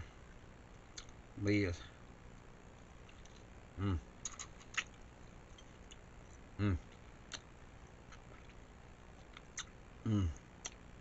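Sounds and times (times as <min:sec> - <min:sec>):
person humming mm: 0:03.8 - 0:04.1, 0:06.6 - 0:06.9, 0:10.0 - 0:10.4.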